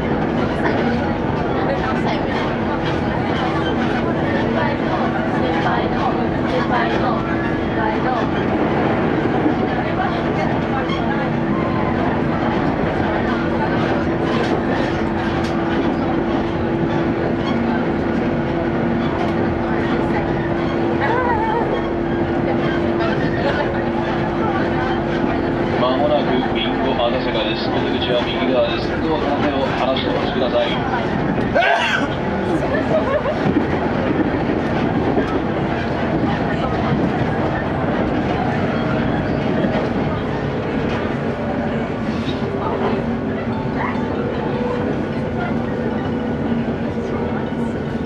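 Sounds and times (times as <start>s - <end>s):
train wheels rumbling on rails: 0.0s - 48.0s.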